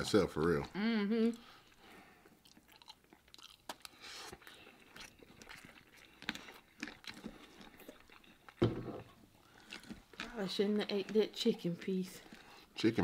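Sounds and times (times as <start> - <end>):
chewing crispy food: 1.4 - 13.0
thump: 8.6 - 9.1.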